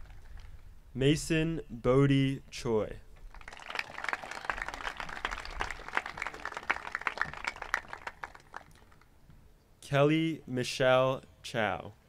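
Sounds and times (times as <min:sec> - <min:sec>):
audience applauding: 0:03.3 - 0:09.1.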